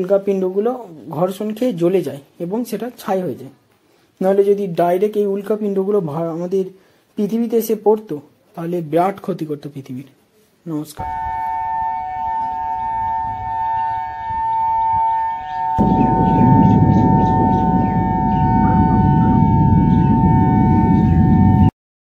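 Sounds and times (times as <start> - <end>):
two-pitch siren tone: 11.0 - 21.7
loud low rumble: 15.8 - 21.7.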